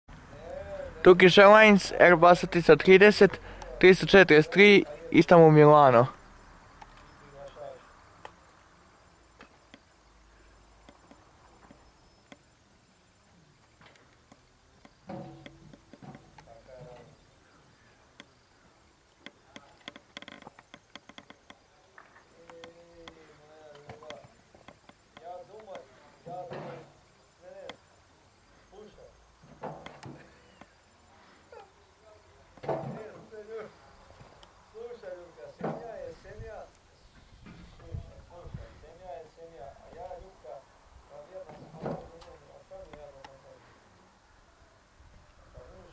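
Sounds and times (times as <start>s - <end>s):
sharp ticks and clicks: 10.8s - 12.5s, 13.9s - 16.6s, 19.1s - 21.6s, 22.4s - 23.2s, 23.8s - 25.9s.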